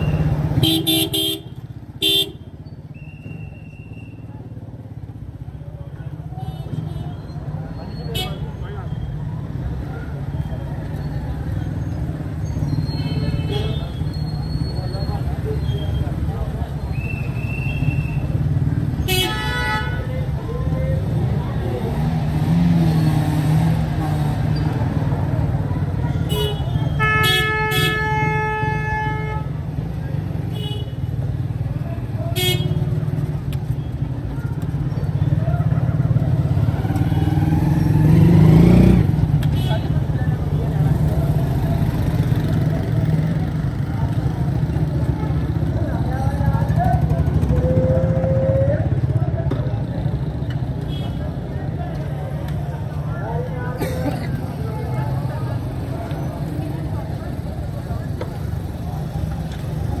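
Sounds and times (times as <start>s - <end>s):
vehicle horns honking: 0.0s - 2.5s, 19.0s - 20.2s, 26.2s - 29.6s, 30.5s - 31.2s, 32.4s - 33.0s
motorcycle rickshaw passing: 0.0s - 27.0s, 29.3s - 60.0s
engines rumbling: 0.0s - 60.0s
people's voices: 3.0s - 60.0s.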